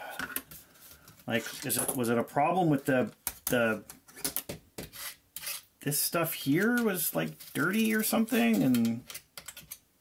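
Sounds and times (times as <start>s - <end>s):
metal laptop parts handled: 6.6s - 9.8s
screwdriver scraping and clicking: 7.8s - 9.8s.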